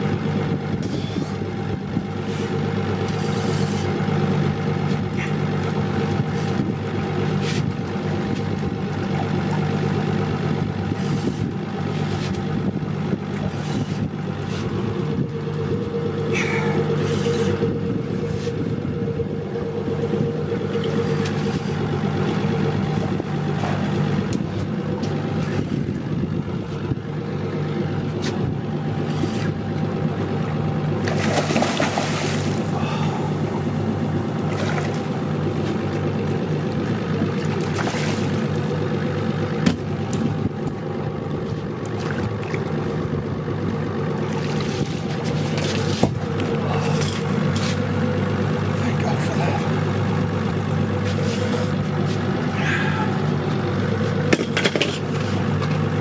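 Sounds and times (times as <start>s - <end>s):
outboard motor idling: 0.0s - 56.0s.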